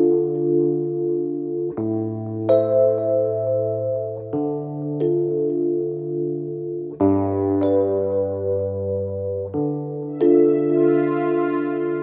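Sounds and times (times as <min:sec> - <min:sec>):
theme music of sustained chords: 0:10.1 - 0:12.0.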